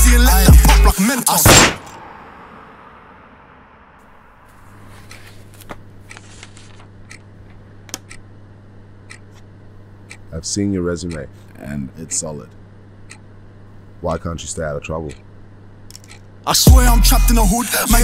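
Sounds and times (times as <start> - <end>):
steady low hum: 4.0 - 18.0
papers rustling and clicking: 4.9 - 8.0.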